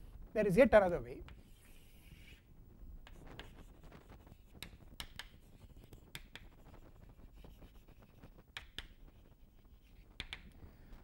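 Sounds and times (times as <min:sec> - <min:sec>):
chalk scraping on blackboard: 0:01.3 - 0:02.5, 0:03.1 - 0:10.3.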